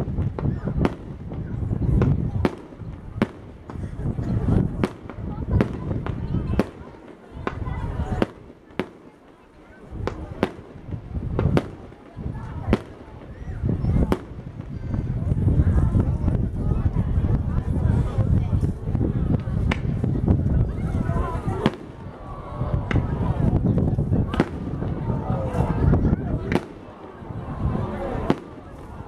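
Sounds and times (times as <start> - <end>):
low fireworks rumble: 0.0 - 29.0.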